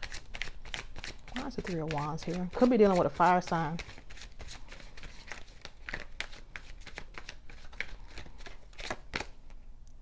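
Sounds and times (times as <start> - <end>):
cards being shuffled: 0.0 - 9.6.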